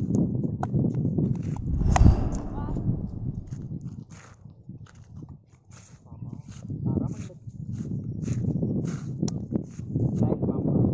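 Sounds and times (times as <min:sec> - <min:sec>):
steady low rumble: 0:01.6 - 0:03.9.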